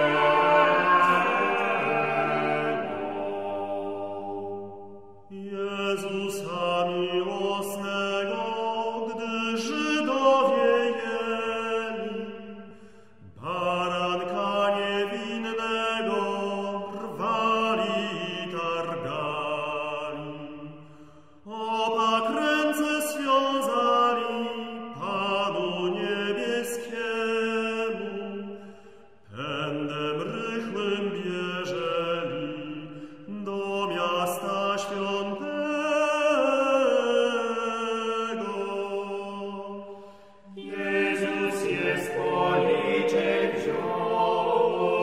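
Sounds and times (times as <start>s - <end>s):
vocal ensemble chanting a hymn: 0.0s - 45.0s.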